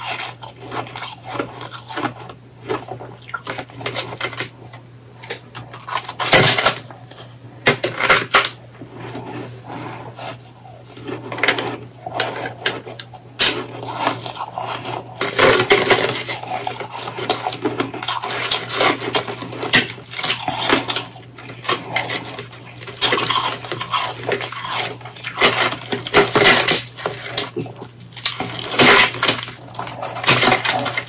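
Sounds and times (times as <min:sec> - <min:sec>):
frozen ice crunching in hands: 0:13.4 - 0:31.0.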